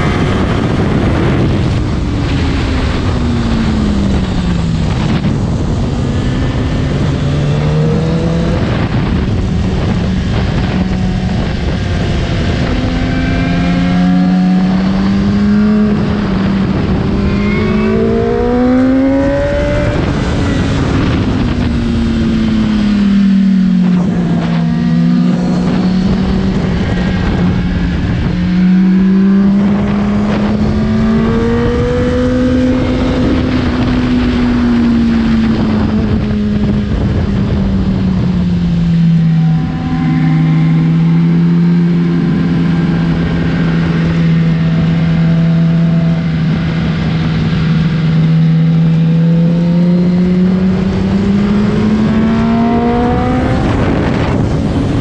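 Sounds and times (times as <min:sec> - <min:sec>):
motorcycle engine at speed: 0:00.0 - 0:55.0
wind rush over microphone: 0:00.0 - 0:55.0.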